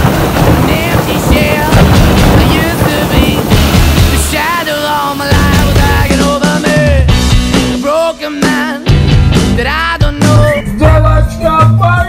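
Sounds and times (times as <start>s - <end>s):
low thunder rumbling: 0.0s - 7.4s
rain and wind rushing: 0.0s - 7.8s.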